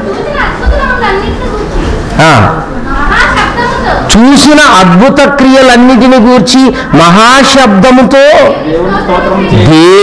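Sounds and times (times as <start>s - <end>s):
man speaking into a microphone: 4.1s - 8.9s.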